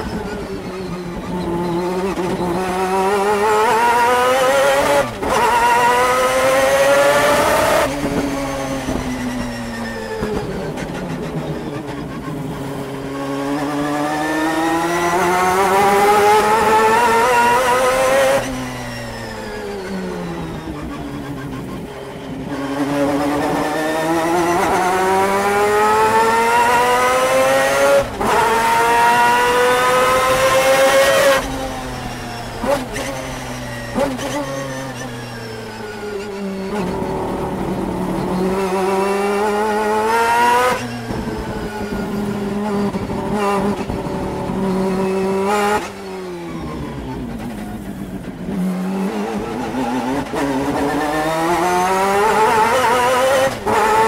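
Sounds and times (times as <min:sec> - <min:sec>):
race car engine revving: 0:00.0 - 0:54.0.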